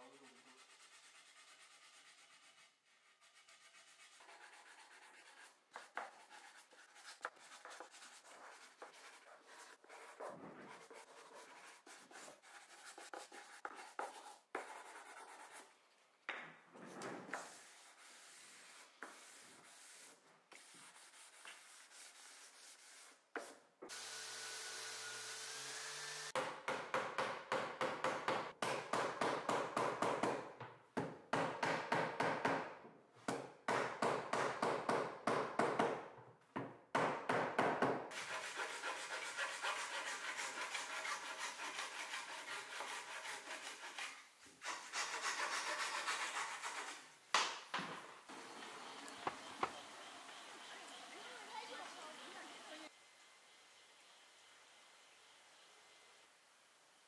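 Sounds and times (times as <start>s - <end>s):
sanding block rubbing wood: 0.0s - 15.6s, 17.4s - 23.6s, 38.1s - 47.2s.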